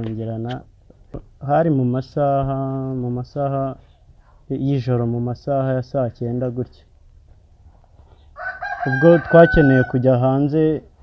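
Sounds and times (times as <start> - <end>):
man speaking: 0.0 - 0.7, 1.4 - 3.8, 4.5 - 7.0, 8.8 - 10.9
rooster crowing: 8.4 - 10.2.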